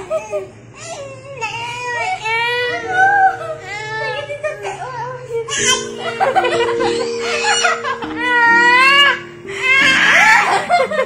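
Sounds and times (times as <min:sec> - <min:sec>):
baby crying: 0:00.0 - 0:10.8
background music with held notes: 0:02.4 - 0:11.0.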